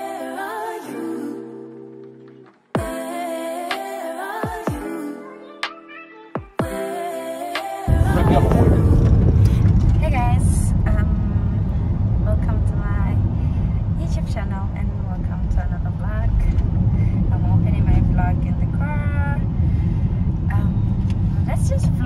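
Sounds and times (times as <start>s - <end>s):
car cabin road noise: 7.9s - 22.0s
woman talking: 10.0s - 11.3s, 12.3s - 13.3s, 13.9s - 16.6s, 17.3s - 19.4s, 20.5s - 22.0s.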